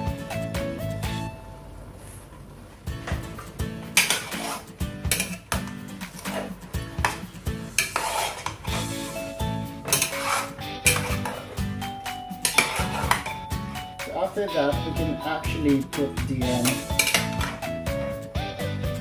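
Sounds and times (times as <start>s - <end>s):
background music: 0.0s - 2.0s, 2.8s - 19.0s
metal ladle scraping a pot: 4.0s - 11.7s, 12.4s - 13.4s, 16.6s - 17.6s.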